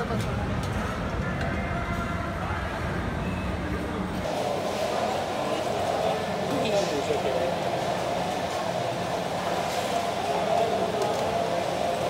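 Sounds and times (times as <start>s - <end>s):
continuous hum: 0.0s - 12.0s
murmur of many people: 0.0s - 12.0s.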